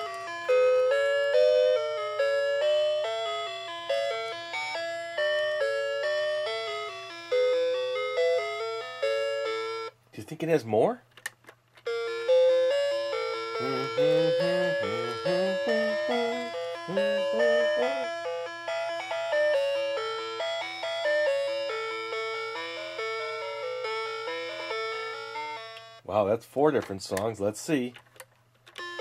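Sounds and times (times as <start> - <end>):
electronic toy melody: 0.0 - 10.0, 11.9 - 26.0, 28.7 - 29.0.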